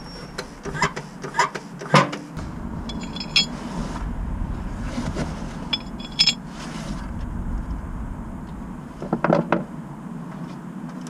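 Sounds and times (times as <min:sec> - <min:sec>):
low background rumble: 0:00.0 - 0:01.2, 0:02.3 - 0:10.8.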